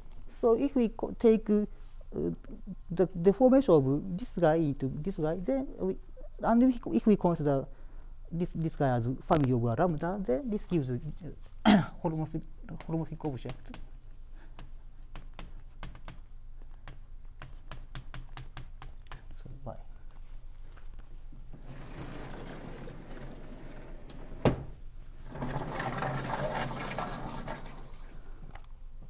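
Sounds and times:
chalk tapping on blackboard: 0:12.7 - 0:19.4
sliding panels scraping and rolling: 0:21.6 - 0:24.5, 0:25.2 - 0:28.1.

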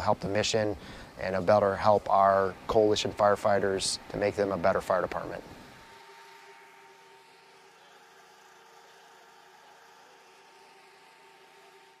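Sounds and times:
faint steady hiss: 0:00.0 - 0:12.0
thin steady hum: 0:00.0 - 0:12.0.

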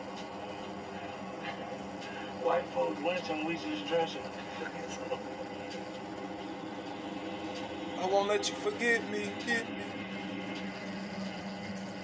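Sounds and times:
faint muffled voices: 0:01.0 - 0:05.8.

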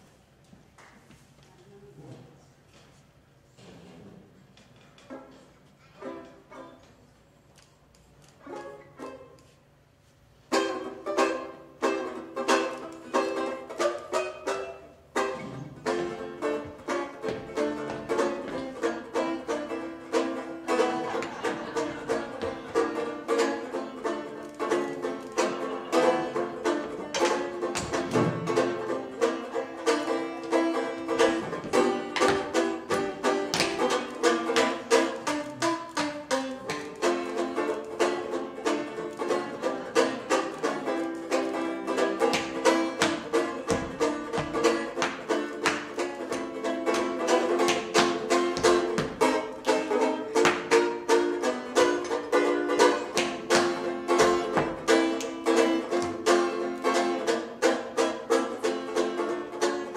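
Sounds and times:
plucked banjo-like tune: 0:04.8 - 0:07.1, 0:08.4 - 0:59.9
tap shoes clicking on wood: 0:15.6 - 0:25.8, 0:26.6 - 0:56.7.

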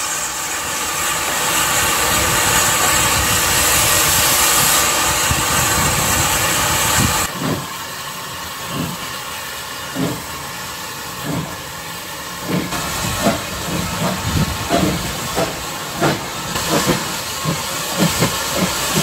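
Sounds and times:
locomotive exhaust chuffs: 0:00.0 - 0:19.0
steam locomotive hissing steam: 0:00.0 - 0:19.0.

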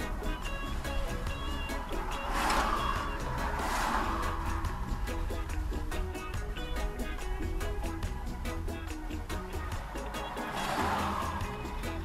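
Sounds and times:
car passing close by: 0:00.0 - 0:07.4, 0:09.2 - 0:12.0
low steady rumble: 0:00.0 - 0:10.4
background music: 0:00.0 - 0:12.0.

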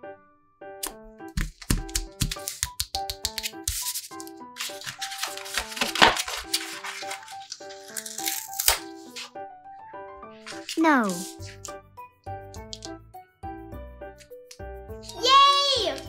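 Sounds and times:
light background music: 0:00.0 - 0:16.0
paper tapping: 0:00.8 - 0:09.3, 0:10.4 - 0:11.8, 0:12.4 - 0:13.0
stiff paper rustling: 0:01.3 - 0:09.4, 0:10.4 - 0:11.8.

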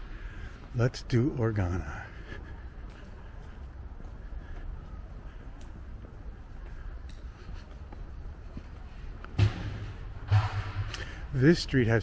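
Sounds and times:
low steady street rumble: 0:00.0 - 0:12.0
faint clicks: 0:05.5 - 0:05.8
short loud thump: 0:09.4 - 0:11.1.

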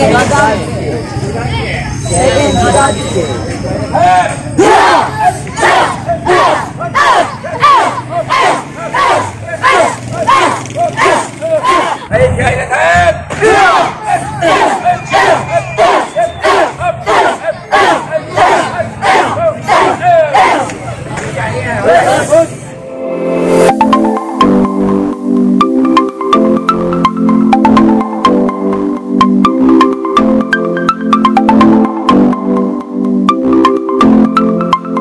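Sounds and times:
group shouting in unison: 0:03.9 - 0:20.9.

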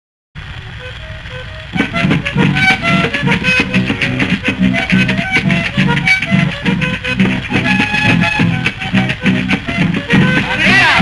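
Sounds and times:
strummed guitar chords: 0:00.4 - 0:11.0
picked guitar melody: 0:00.5 - 0:11.0.

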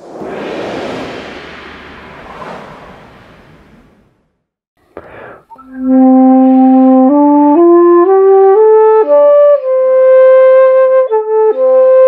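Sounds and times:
breathy whoosh: 0:00.0 - 0:04.3.

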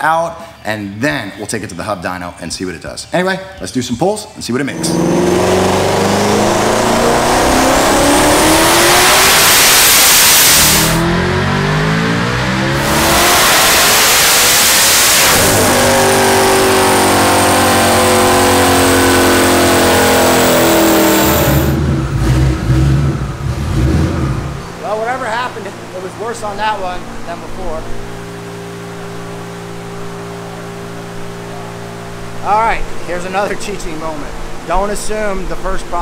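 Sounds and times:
car engine at full throttle: 0:04.7 - 0:33.1.

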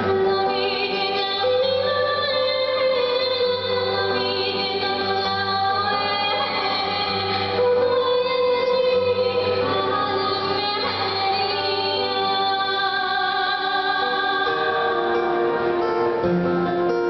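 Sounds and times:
woman singing: 0:00.0 - 0:15.9
acoustic guitar: 0:00.0 - 0:17.0.

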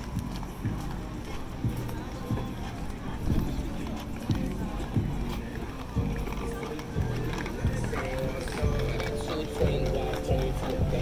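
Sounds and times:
background chatter: 0:00.0 - 0:11.0
background music: 0:00.0 - 0:11.0
footsteps on wooden planks: 0:00.0 - 0:11.0.

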